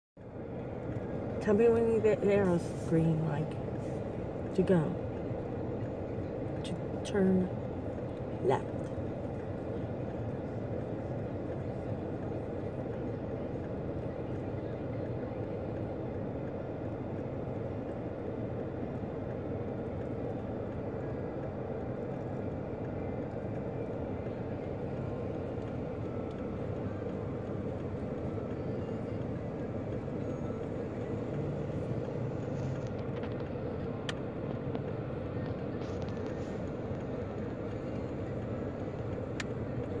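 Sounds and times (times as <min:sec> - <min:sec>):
car cabin drone and hiss: 0:00.2 - 0:40.0.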